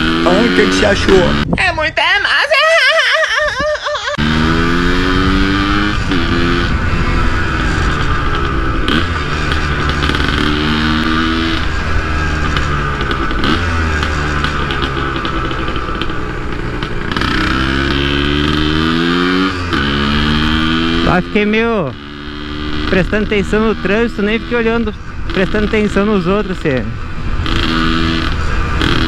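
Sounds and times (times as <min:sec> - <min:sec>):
two-stroke engine accelerating: 0:00.0 - 0:01.6, 0:04.0 - 0:29.0.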